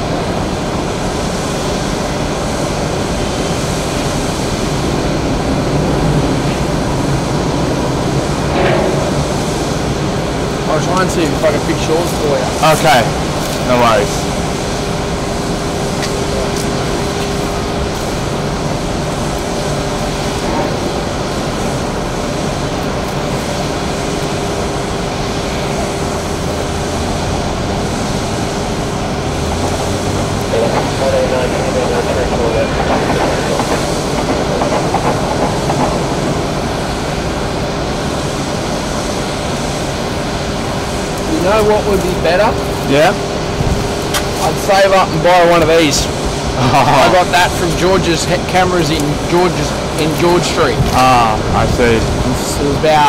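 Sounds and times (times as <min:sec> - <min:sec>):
distant jet engine noise: 0:00.0 - 0:53.0
mid-pitched hum: 0:00.0 - 0:53.0
faint voices: 0:30.5 - 0:35.1.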